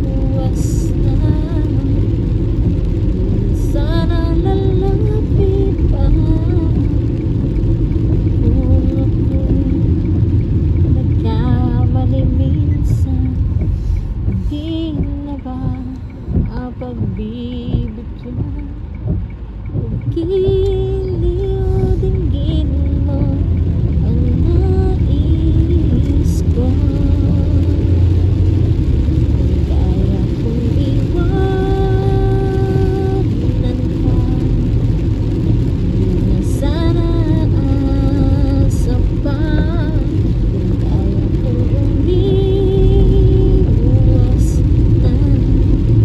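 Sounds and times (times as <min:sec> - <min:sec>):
car cabin rumble: 0:00.0 - 0:46.0.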